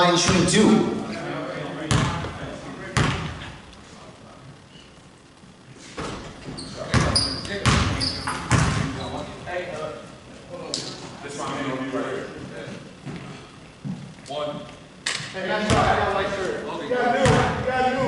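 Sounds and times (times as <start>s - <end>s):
players' voices: 0.0s - 5.1s, 6.0s - 18.0s
sneaker squeaks: 6.0s - 9.4s
basketball bouncing on hardwood: 6.9s - 8.9s.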